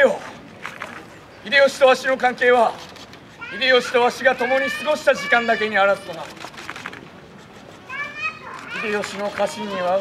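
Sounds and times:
child calling out: 3.4s - 6.2s, 7.9s - 10.0s.

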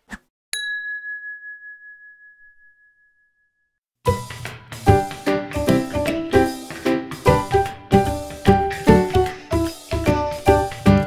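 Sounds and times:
bell-like ding: 0.6s - 3.7s.

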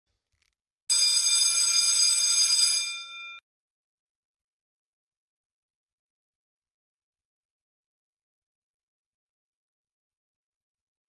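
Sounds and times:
bell ringing: 0.9s - 3.4s.

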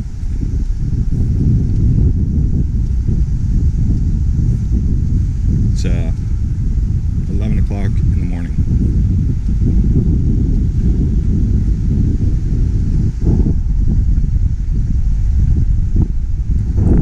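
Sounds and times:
wind buffeting microphone: 0.0s - 17.0s
person's voice: 5.8s - 6.2s, 7.3s - 8.6s.

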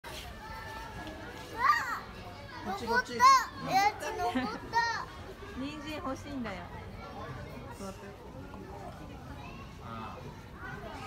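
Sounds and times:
children's voices murmuring: 0.1s - 11.0s.

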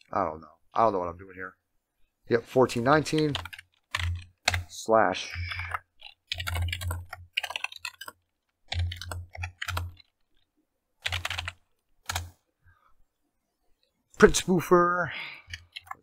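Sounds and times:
typing on computer keyboard: 3.0s - 4.7s, 5.4s - 10.4s, 11.0s - 12.4s, 15.5s - 16.0s.

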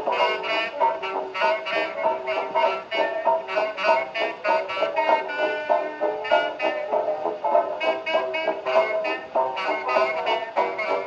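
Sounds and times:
old dance-band record: 0.0s - 11.0s.

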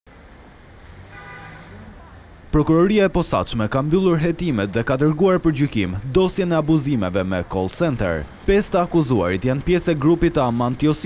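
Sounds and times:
road traffic rumble: 0.1s - 11.0s.

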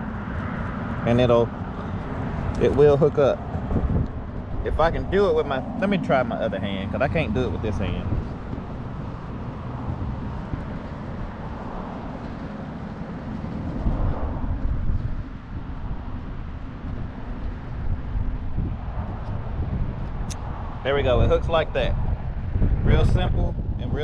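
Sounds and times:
wind rumbling on microphone: 0.0s - 24.0s.

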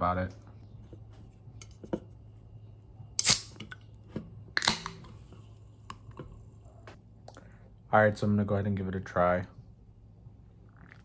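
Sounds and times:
soda can opening with hiss: 3.2s - 3.6s.

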